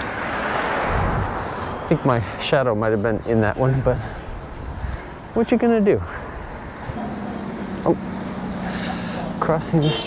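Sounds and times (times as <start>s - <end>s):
street noise: 0.0s - 10.0s
motor vehicle humming: 6.2s - 10.0s.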